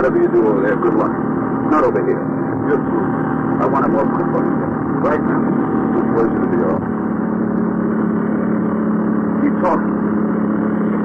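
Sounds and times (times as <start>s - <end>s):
bus engine and road drone: 0.0s - 11.0s.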